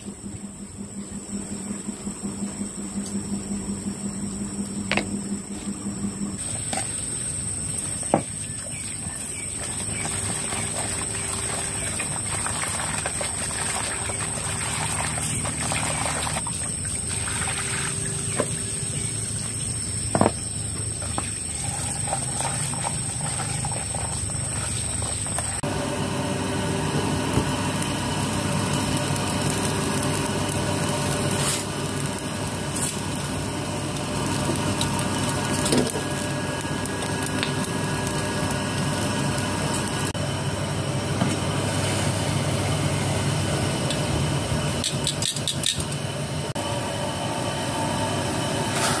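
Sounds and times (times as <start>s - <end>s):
gas stove burner running: 0.0s - 8.3s, 25.4s - 49.0s
water trickling into a basin: 7.7s - 18.7s.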